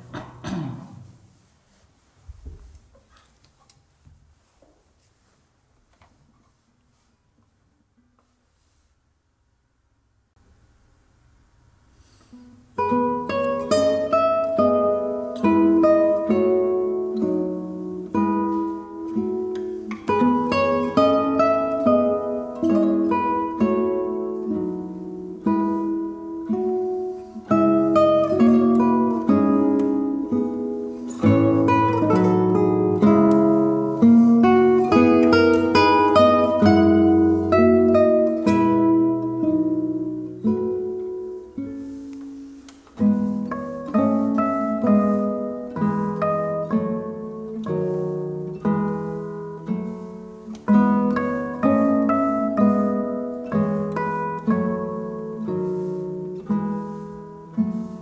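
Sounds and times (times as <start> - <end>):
classical guitar duet: 0.0 - 1.6, 11.9 - 58.0.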